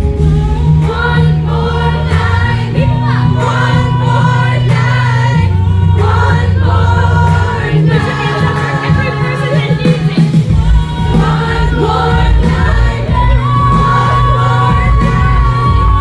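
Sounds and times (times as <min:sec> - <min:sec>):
female vocal group singing: 0:00.0 - 0:16.0
held bass notes: 0:00.0 - 0:16.0
live pop band: 0:00.0 - 0:16.0.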